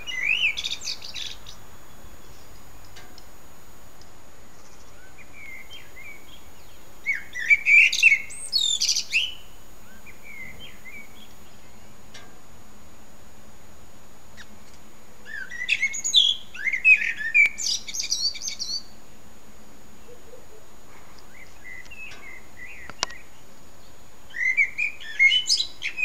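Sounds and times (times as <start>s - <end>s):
songbird warbling: 0.0s - 12.0s, 15.3s - 18.9s.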